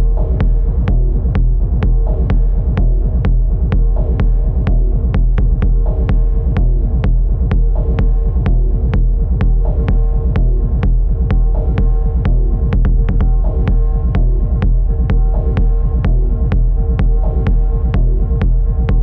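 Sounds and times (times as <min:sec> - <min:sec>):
deep bass drone: 0:00.0 - 0:19.0.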